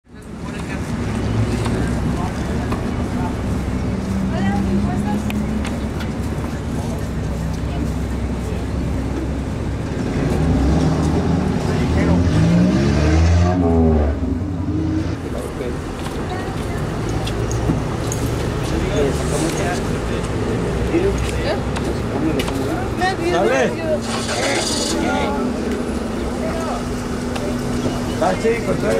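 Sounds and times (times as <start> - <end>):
street traffic: 0.0 - 28.9
vehicle engine passing: 0.3 - 28.9.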